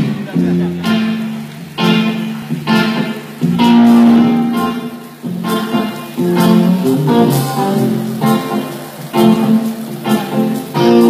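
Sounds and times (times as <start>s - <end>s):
guitar chords: 0.0s - 11.0s
live band playing: 0.0s - 11.0s.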